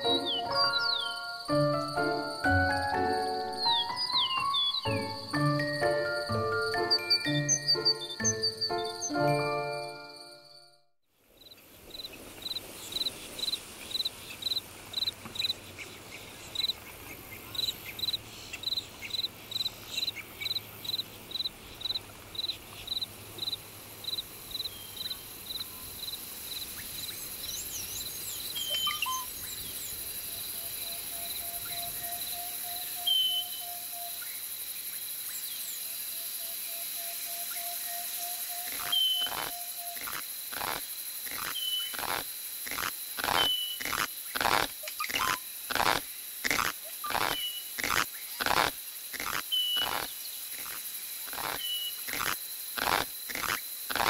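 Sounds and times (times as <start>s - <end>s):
high insect drone: 0.0s - 4.0s, 16.3s - 54.0s
insect chirping: 0.0s - 10.4s, 11.3s - 54.0s.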